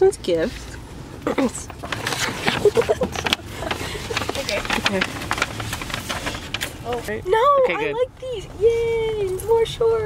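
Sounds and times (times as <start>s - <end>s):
car interior hum: 0.0s - 10.0s
paper crinkling and tearing: 1.5s - 7.1s.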